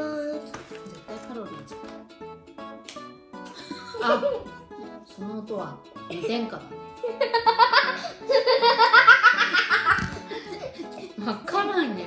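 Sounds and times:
children laughing: 7.0s - 11.0s.

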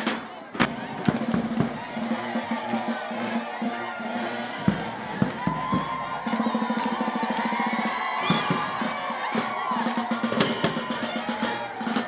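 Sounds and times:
music with voices: 0.0s - 12.0s
sharp drum beats: 0.0s - 12.0s.

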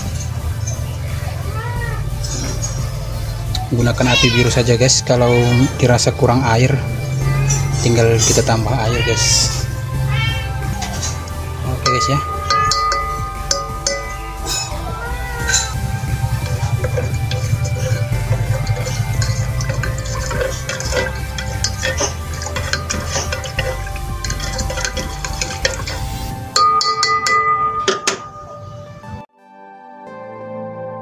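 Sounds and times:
background music: 0.0s - 31.0s
ringing music-like tones: 0.0s - 31.0s
spoon stirring in metal pot: 10.8s - 14.8s, 15.5s - 28.3s
gas burner rumble: 11.0s - 27.6s.

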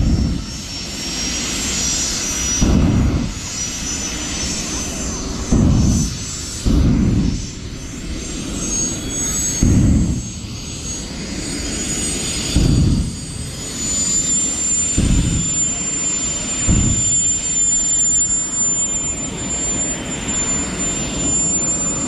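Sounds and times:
wind buffeting microphone: 0.0s - 0.8s, 2.6s - 3.6s, 4.6s - 10.7s, 12.3s - 14.0s, 15.0s - 17.6s
high whine: 0.0s - 22.0s
car engine at high revs: 2.6s - 3.6s, 4.8s - 10.4s, 14.8s - 15.8s, 16.6s - 17.6s.

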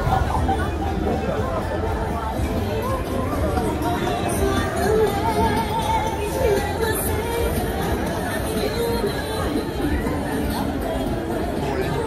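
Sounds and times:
background music: 0.0s - 12.0s
crowd chatter: 0.0s - 12.0s.

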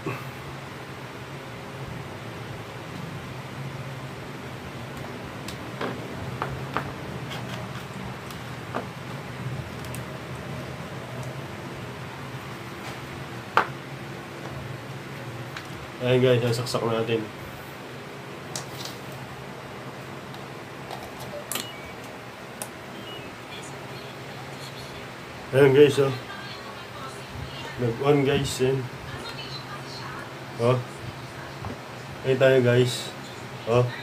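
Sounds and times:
steady background hum: 0.0s - 34.0s
wires and connector clicking: 9.7s - 10.4s.

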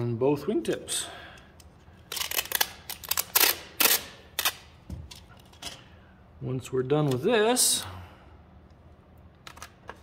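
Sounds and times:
packing tape ripping off roll: 2.1s - 4.7s.

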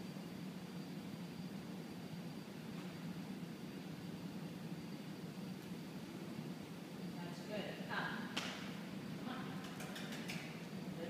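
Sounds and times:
woman speaking: 7.2s - 8.3s, 9.2s - 9.8s
sharp clicks: 9.6s - 10.5s.

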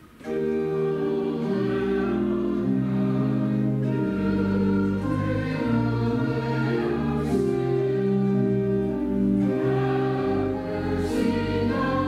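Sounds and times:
slow church music chords: 0.0s - 12.0s
choral singing: 0.1s - 12.0s.

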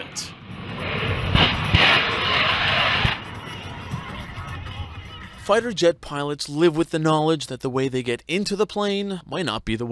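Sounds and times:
jet roar: 0.0s - 5.5s
background music: 1.7s - 5.8s.

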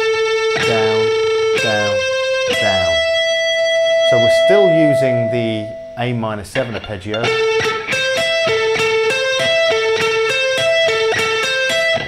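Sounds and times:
electric guitar arpeggio: 0.0s - 12.0s.

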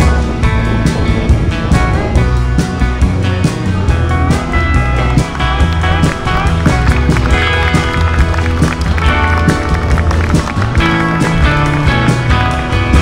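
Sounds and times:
loud music with heavy bass: 0.0s - 13.0s.

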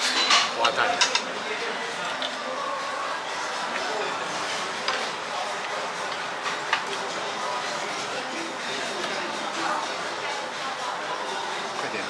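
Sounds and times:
utensils clinking on tableware: 0.0s - 1.3s
restaurant chatter: 0.0s - 12.0s.

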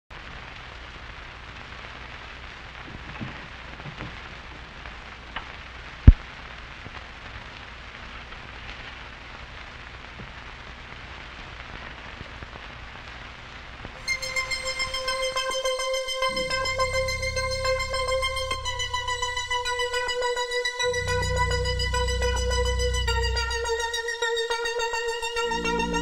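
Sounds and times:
record hiss and crackle: 0.1s - 26.0s
low hum: 14.0s - 24.6s, 25.3s - 26.0s.

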